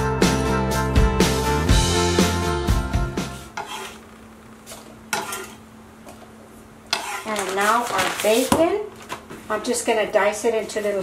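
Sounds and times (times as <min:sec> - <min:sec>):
background music: 0:00.0 - 0:03.5
kitchen utensils scraping and knocking: 0:03.5 - 0:04.0, 0:04.7 - 0:05.6, 0:06.9 - 0:08.7.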